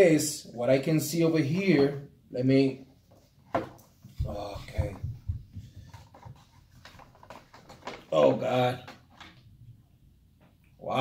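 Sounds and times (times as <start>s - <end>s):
plastic wrapper rustling: 6.1s - 9.4s.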